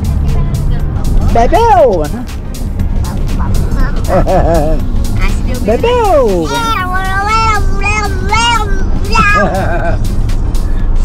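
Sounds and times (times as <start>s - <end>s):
music playing: 0.0s - 11.0s
road and engine rumble in car: 0.0s - 11.0s.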